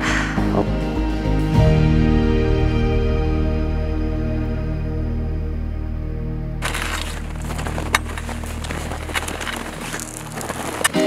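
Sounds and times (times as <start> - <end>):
footsteps crunching in snow: 6.6 - 11.0.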